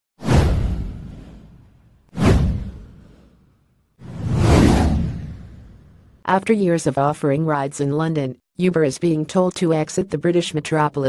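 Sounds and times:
whoosh sound effects: 2.2s - 6.0s.

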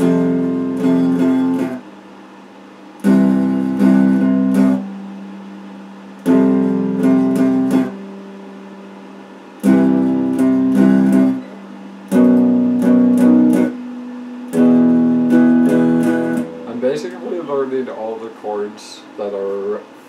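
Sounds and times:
electric guitar strumming chords: 0.0s - 2.0s, 3.0s - 18.2s
low steady hum: 0.0s - 20.0s.

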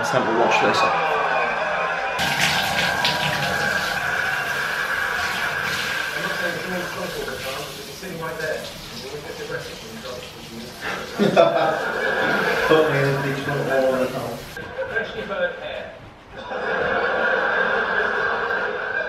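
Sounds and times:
shower water spraying on head: 2.2s - 14.6s.

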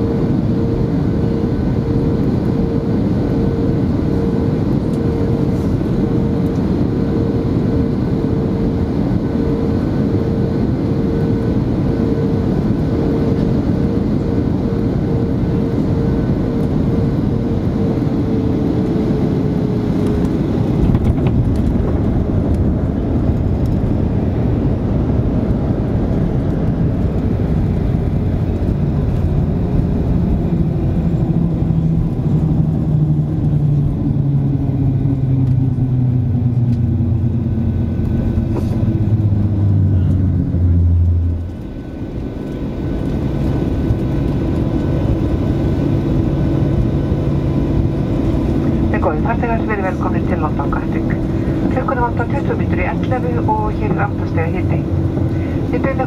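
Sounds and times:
jet airliner cabin rumble: 0.0s - 56.0s.

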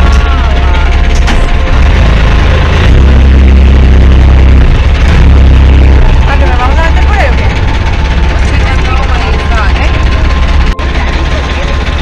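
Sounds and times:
motorboat engine rumbling: 0.0s - 12.0s.

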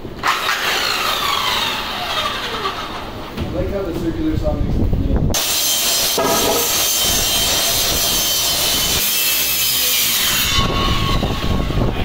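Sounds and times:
circular saw cutting panel: 0.2s - 3.4s, 5.4s - 12.0s.

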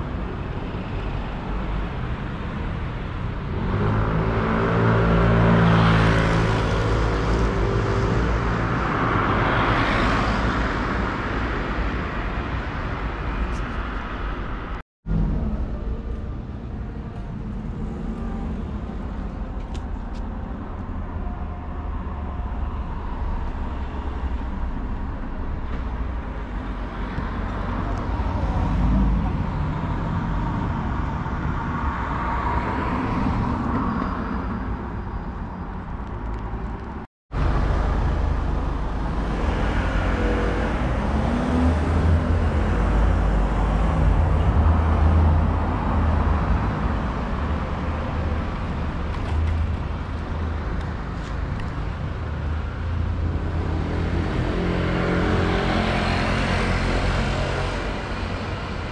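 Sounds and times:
road traffic hum: 0.0s - 58.9s.

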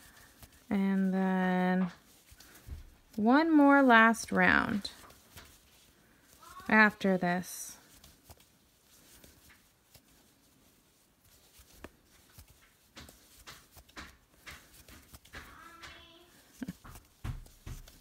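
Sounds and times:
crochet hook clicks and yarn rustles: 0.0s - 10.2s, 11.2s - 18.0s.

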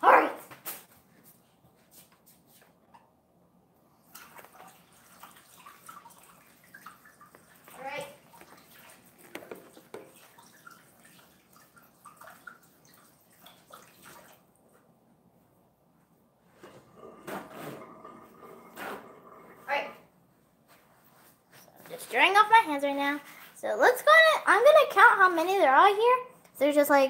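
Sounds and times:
distant running tap water: 3.9s - 14.9s, 16.5s - 20.2s.

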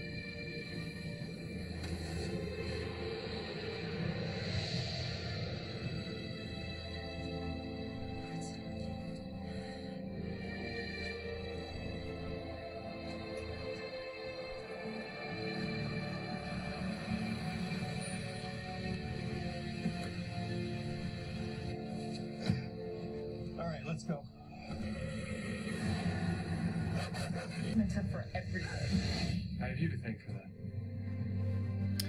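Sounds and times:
dramatic orchestral score: 0.0s - 32.0s
faint dialogue: 23.5s - 25.0s, 27.0s - 30.6s.

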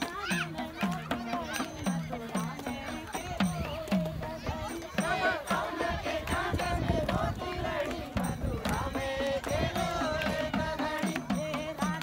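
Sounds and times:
steady drum beat: 0.0s - 12.0s
voices: 0.0s - 12.0s.

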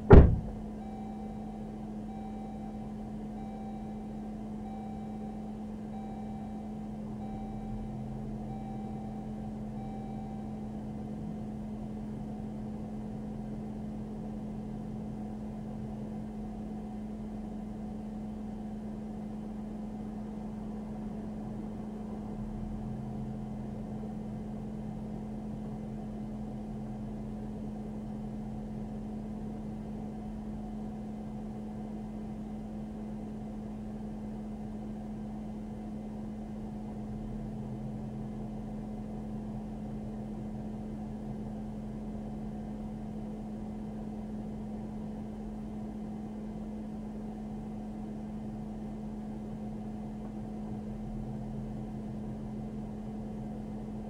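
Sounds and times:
car engine low hum: 0.0s - 54.0s.

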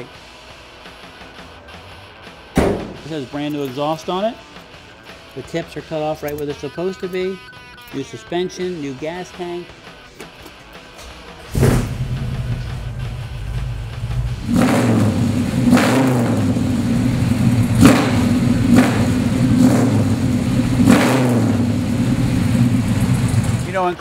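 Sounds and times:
engine starting and idling: 11.4s - 23.8s
engine throttle blips: 11.4s - 23.9s.

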